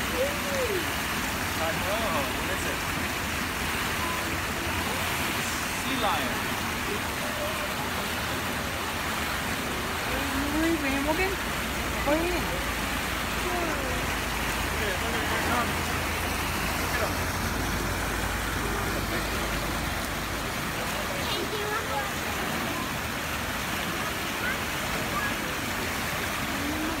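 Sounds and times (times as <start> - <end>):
fountain water splashing into pool: 0.0 - 27.0
people's voices: 0.0 - 27.0.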